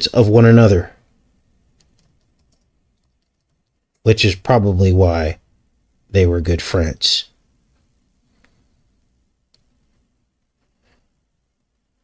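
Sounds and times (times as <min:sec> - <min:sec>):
keyboard typing: 0:01.7 - 0:04.0.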